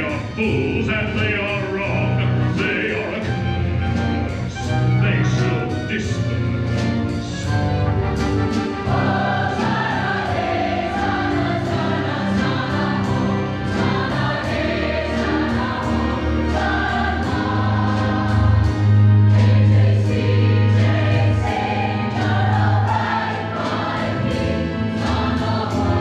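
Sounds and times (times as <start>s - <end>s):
choir singing held chords: 0.0s - 26.0s
steady bass: 0.0s - 26.0s.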